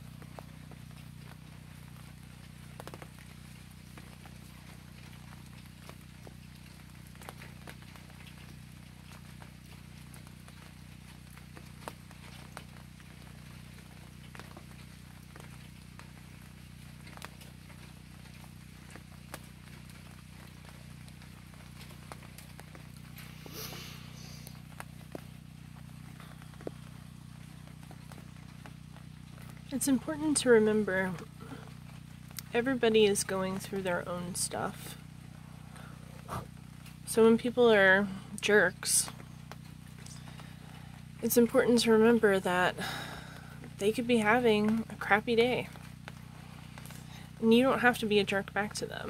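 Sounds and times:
rain drips and taps: 0.0s - 49.0s
steady low hum: 0.0s - 49.0s
brief hiss: 23.2s - 24.6s.

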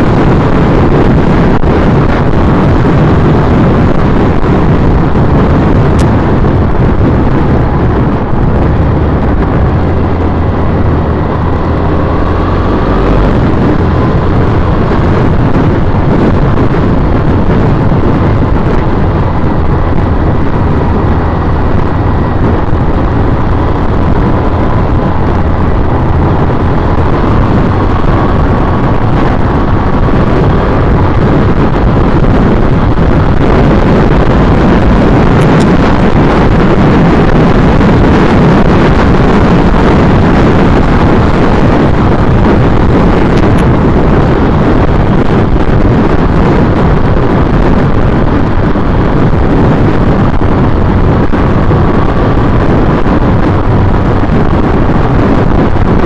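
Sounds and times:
motorcycle engine cruising: 0.0s - 56.0s
wind noise on microphone: 0.0s - 56.0s.

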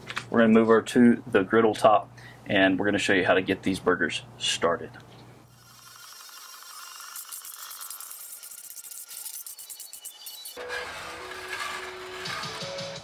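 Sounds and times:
metal scraper scraping steel griddle: 5.6s - 13.0s
music-like transition sound: 10.6s - 13.0s.

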